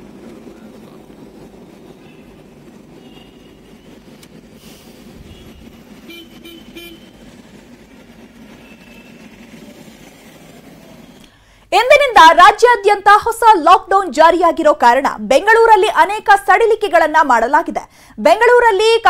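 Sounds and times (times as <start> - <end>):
passing cars and motorbikes: 0.3 - 11.2
vehicle horn tooting: 3.0 - 3.9, 5.2 - 7.2.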